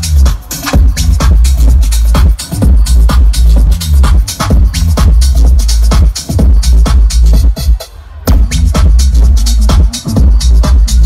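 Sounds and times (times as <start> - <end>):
loud techno with heavy bass: 0.0 - 11.0.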